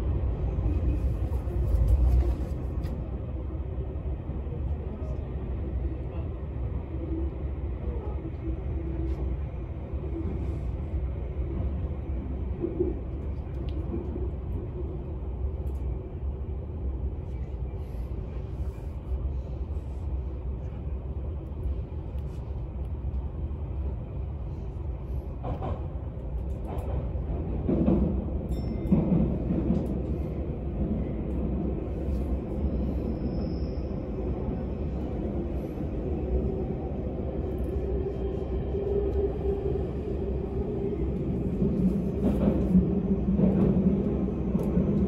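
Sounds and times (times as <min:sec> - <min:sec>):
train rumbling at speed: 0:00.0 - 0:45.0.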